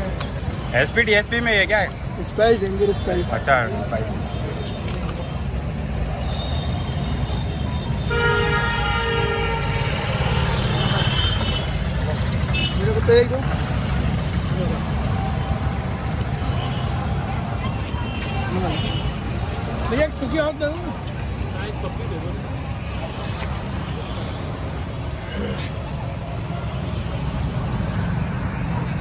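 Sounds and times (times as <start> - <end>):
street traffic rumble: 0.0 - 29.0
vehicle horn honking: 8.0 - 10.0.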